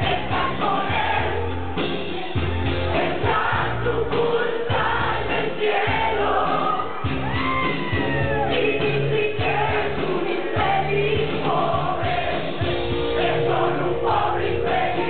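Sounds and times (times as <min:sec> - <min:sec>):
lead singing voice: 0:00.0 - 0:07.2, 0:08.1 - 0:15.0.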